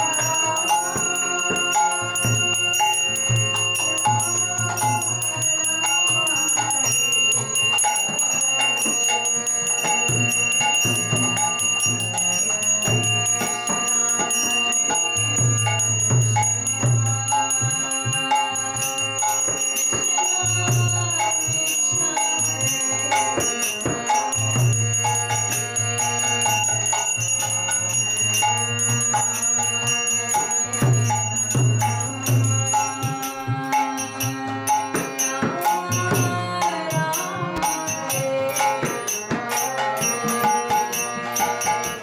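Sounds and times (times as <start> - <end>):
devotional music with drum beats: 0.0 - 42.0
hand bell ringing: 0.0 - 42.0
harmonium drone: 0.0 - 42.0.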